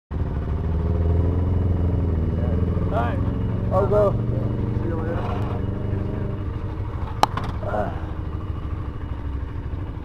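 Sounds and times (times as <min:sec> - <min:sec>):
motorcycle engine idling: 0:00.1 - 0:10.0.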